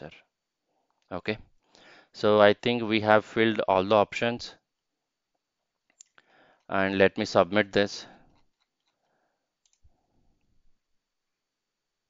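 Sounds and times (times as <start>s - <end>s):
computer mouse clicks: 5.9s - 6.2s, 9.6s - 9.9s.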